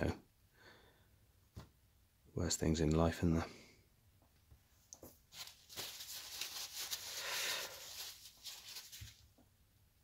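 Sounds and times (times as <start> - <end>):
hands rustling small parts: 4.9 - 9.4.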